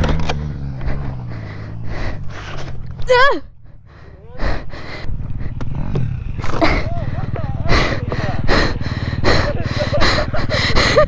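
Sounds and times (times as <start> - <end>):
dirt bike engine at low revs: 0.0 - 11.0.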